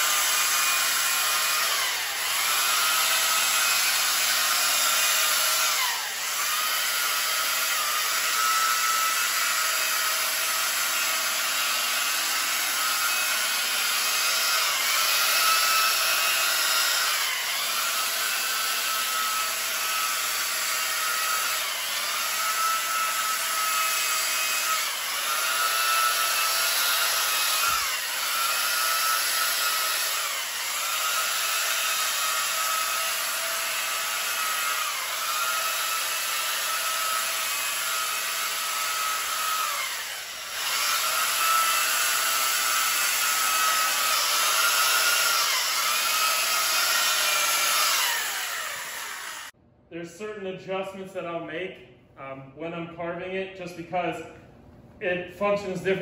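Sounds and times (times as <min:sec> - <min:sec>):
electric chainsaw cutting ice: 0:00.0 - 0:49.6.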